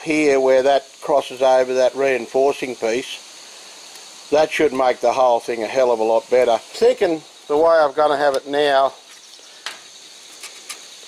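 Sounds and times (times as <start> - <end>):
crickets chirring: 0.0 - 11.0.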